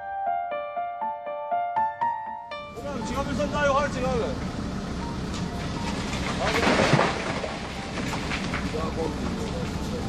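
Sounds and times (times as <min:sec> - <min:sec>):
rock and debris falling: 0:05.8 - 0:08.9
faint men's voices: 0:08.6 - 0:10.0.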